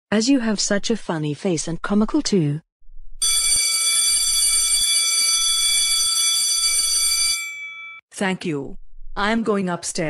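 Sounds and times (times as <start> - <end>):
electric doorbell ringing: 3.2 - 8.0.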